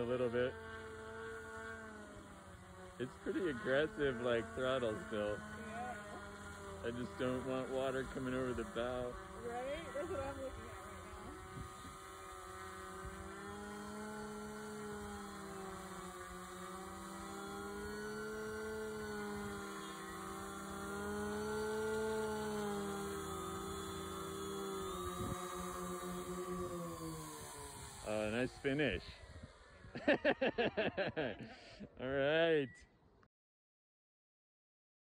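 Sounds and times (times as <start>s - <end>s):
propeller and motor buzzing: 0.0s - 32.9s.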